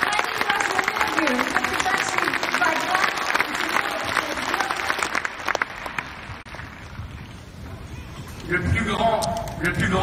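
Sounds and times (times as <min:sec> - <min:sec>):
audience applauding: 0:00.0 - 0:07.0.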